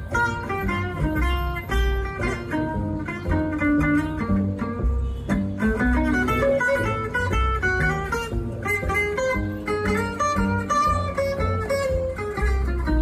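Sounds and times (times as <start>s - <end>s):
acoustic guitar picked notes: 0.0s - 13.0s
low bass notes: 0.0s - 13.0s.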